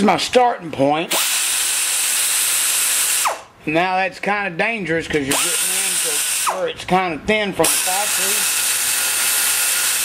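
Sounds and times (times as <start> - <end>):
die grinder whining: 1.1 - 3.4, 5.3 - 6.7, 7.6 - 10.0.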